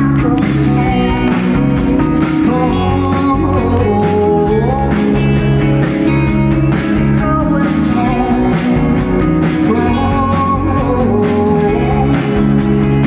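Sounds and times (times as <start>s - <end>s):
live band playing pop-rock: 0.0s - 13.0s.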